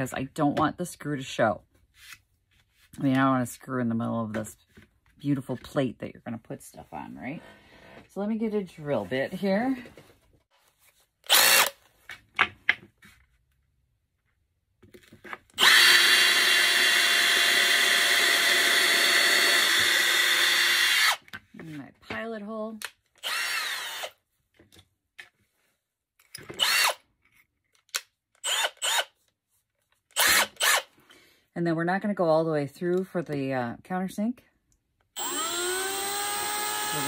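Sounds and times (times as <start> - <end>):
drill drilling into wood: 11.3 - 11.8, 15.6 - 21.2, 23.2 - 24.2, 26.6 - 27.0, 28.4 - 29.1, 30.2 - 30.9, 35.2 - 37.0.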